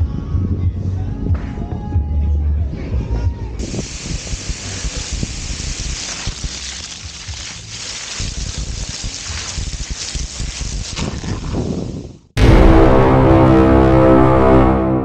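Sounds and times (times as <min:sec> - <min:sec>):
hose water spraying and splashing: 0:03.6 - 0:12.2.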